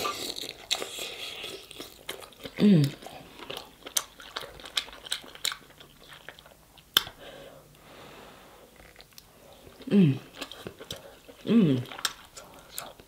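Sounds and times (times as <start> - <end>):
wet chewing and mouth smacks: 0.0 - 7.2, 8.8 - 13.0.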